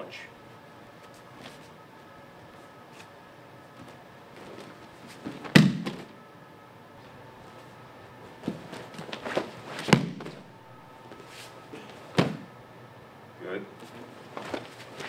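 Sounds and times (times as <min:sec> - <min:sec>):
dull thuds: 0:05.2 - 0:06.2, 0:08.4 - 0:10.5, 0:12.1 - 0:12.5.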